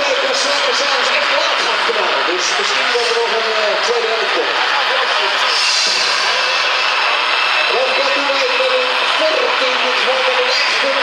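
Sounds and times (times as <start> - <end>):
diesel engine hiss: 4.5 - 10.7.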